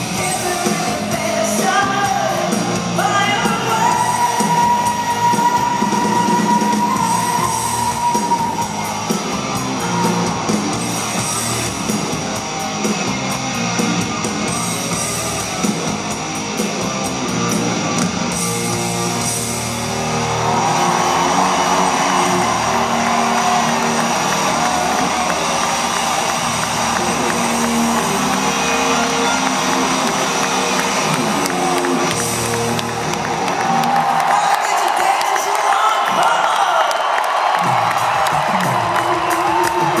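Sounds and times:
live rock band playing: 0.0s - 36.1s, 37.4s - 40.0s
crowd cheering and whooping: 0.0s - 40.0s.

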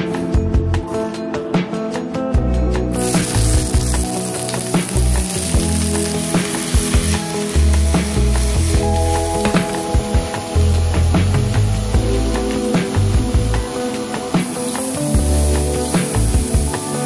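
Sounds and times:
food sizzling in frying pan: 2.9s - 17.0s.

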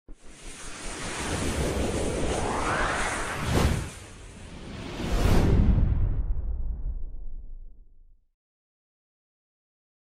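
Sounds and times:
whoosh sound effect: 0.5s - 6.1s.

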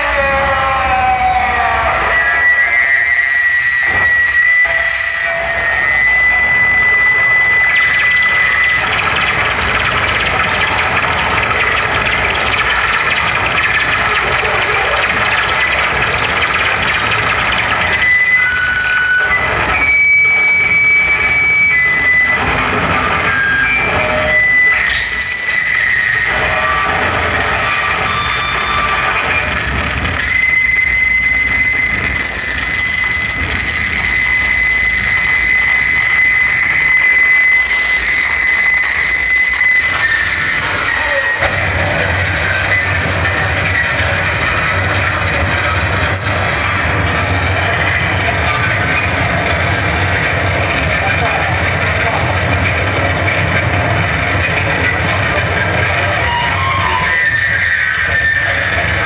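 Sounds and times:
distorted harsh noise: 0.0s - 59.0s
shrill sweeping tone: 0.0s - 59.0s
high feedback tones: 1.5s - 59.0s.

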